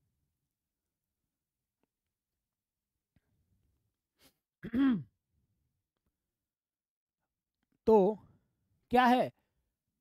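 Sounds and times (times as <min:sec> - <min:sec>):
man clearing his throat: 0:04.6 - 0:05.1.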